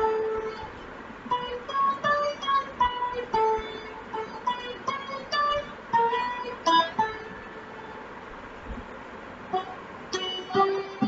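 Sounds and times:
electric guitar note: 9.5 - 11.0.

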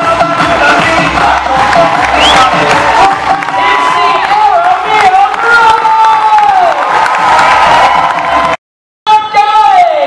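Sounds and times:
music: 0.0 - 5.1
audience cheering and clapping: 0.1 - 8.6.

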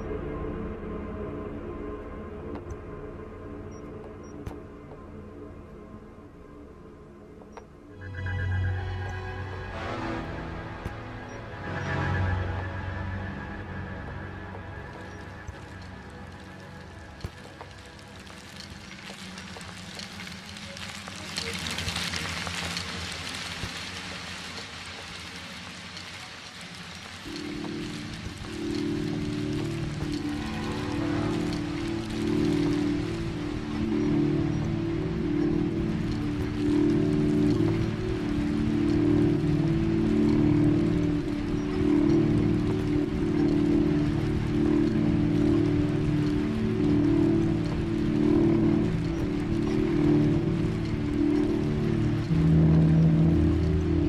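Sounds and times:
hissing rain-like electronic noise: 0.0 - 54.0.

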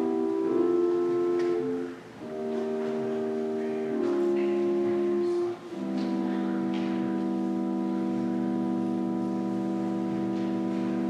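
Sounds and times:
organ playing slow chords: 0.0 - 11.0.

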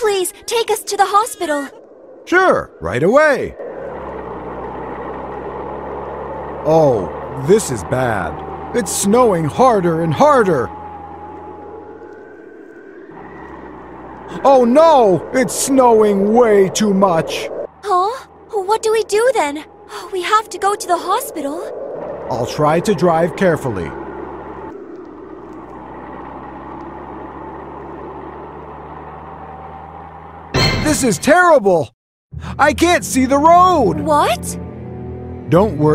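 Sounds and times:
cartoon car engine hum: 0.0 - 31.8, 32.4 - 35.9
rushing noise: 0.9 - 26.6.

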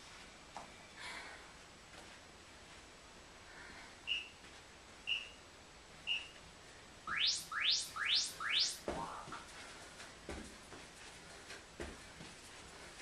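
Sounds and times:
short high beeps: 7.1 - 8.9.

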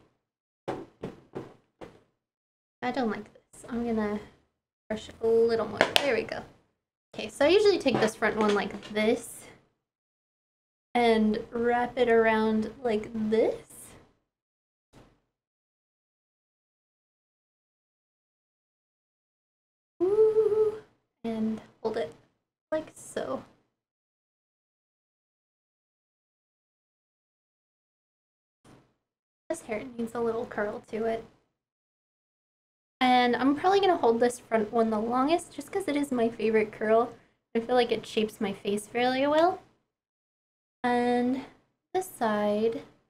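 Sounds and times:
woman humming: 20.0 - 20.8.

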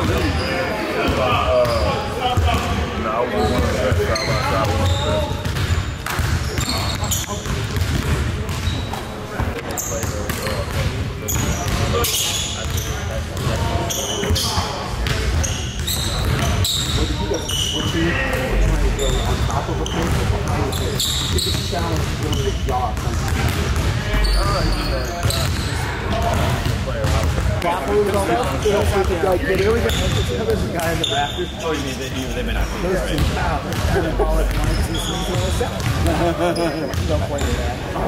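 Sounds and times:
sneaker squeaks: 0.0 - 27.5, 28.1 - 38.0
basketballs bouncing on hardwood: 4.6 - 8.8, 13.4 - 14.4, 15.0 - 17.0, 18.6 - 24.0, 26.2 - 29.2, 33.2 - 36.3
indistinct voices: 13.4 - 29.8.

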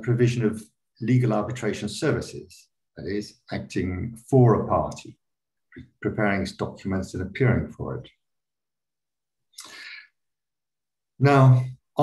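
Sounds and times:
person breathing out: 9.6 - 10.2.

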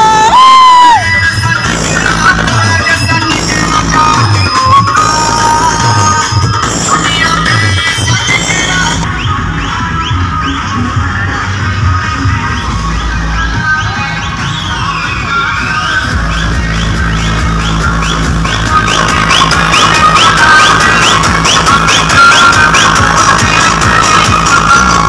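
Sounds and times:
electronic dance music with heavy bass: 0.0 - 25.0.

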